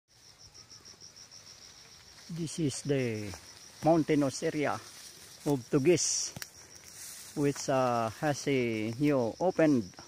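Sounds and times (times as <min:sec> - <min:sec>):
faint insect chirping: 0:00.1 - 0:10.0.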